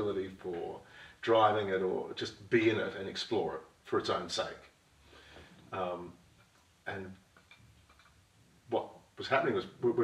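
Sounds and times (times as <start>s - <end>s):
man speaking: 0.0s - 4.8s, 5.7s - 6.2s, 6.8s - 7.3s, 8.7s - 10.0s
faint small clicks: 6.4s - 8.2s.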